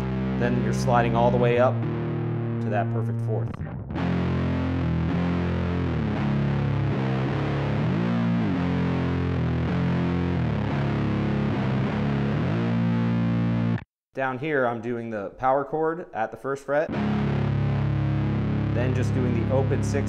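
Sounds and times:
distorted electric guitar riff: 0.0s - 13.8s, 16.9s - 20.0s.

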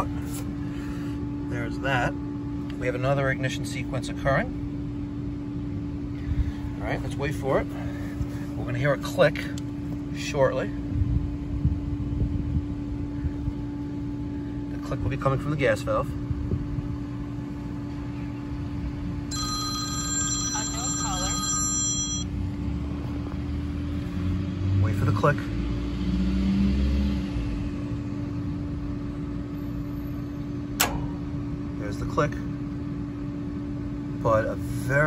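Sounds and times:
steady hum: 0.0s - 22.4s, 30.2s - 35.0s
phone-like ringing: 19.3s - 22.3s
gas valve click: 30.8s - 31.4s.

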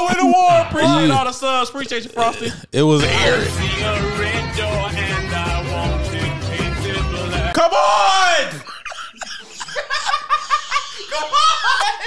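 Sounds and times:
man laughing hard: 8.4s - 12.0s.

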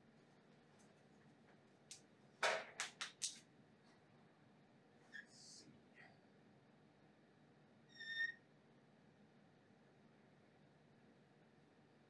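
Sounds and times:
marker squeaking on whiteboard: 7.9s - 8.4s.

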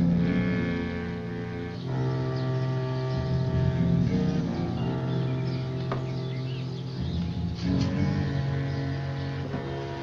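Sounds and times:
held musical chord: 0.0s - 10.0s
steady low note: 0.0s - 10.0s.

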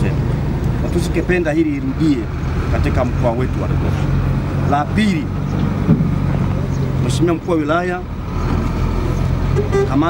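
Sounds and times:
vehicle engine running: 0.0s - 10.0s
horn toot: 9.5s - 10.0s.

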